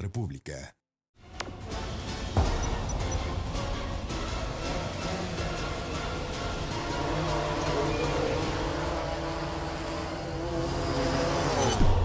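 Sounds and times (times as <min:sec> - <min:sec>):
music: 0:01.2 - 0:10.4, 0:11.3 - 0:12.0
drone motors whirring: 0:04.6 - 0:12.0.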